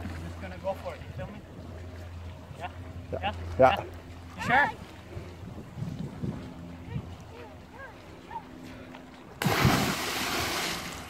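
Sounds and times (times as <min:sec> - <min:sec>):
wind rumbling on microphone: 0:04.4 - 0:07.6.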